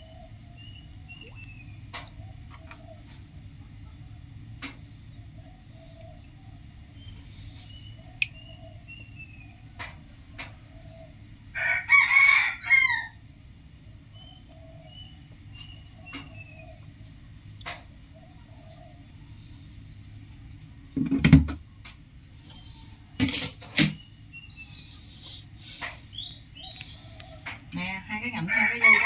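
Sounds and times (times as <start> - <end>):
rooster crowing: 11.5 - 13.2, 28.3 - 29.0.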